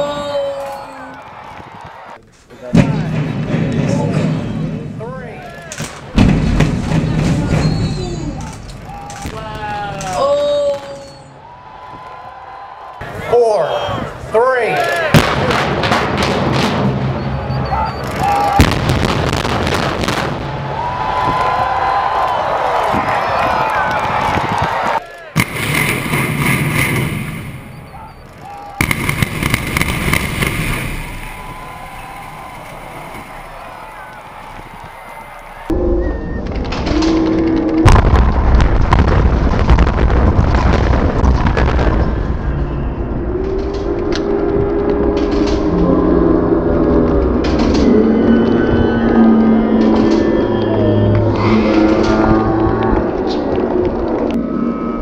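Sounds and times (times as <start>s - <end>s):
demolition charges banging: 2.6s - 10.2s, 25.3s - 53.6s
building collapsing rumble: 2.7s - 5.2s, 6.0s - 10.1s, 15.2s - 55.0s.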